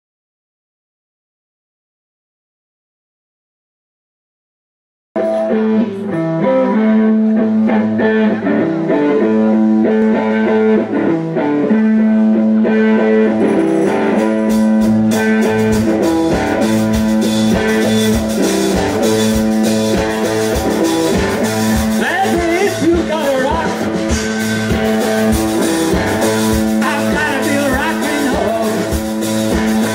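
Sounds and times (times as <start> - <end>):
bass guitar: 5.2 - 29.9
electric guitar riff: 5.2 - 29.9
drum kit: 12.2 - 29.9.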